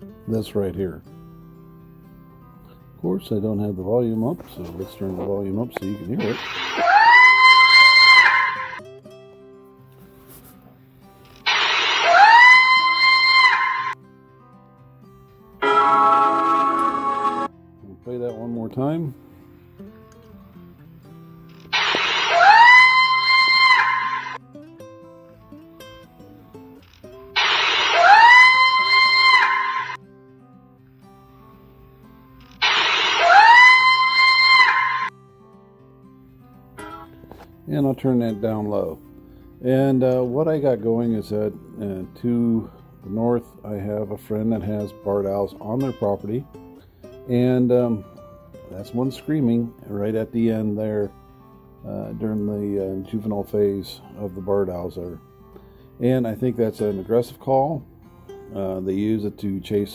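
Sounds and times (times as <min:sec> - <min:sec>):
owl screaming: 0:06.2 - 0:08.8, 0:11.5 - 0:14.0, 0:21.7 - 0:24.4, 0:27.4 - 0:30.0, 0:32.6 - 0:35.1.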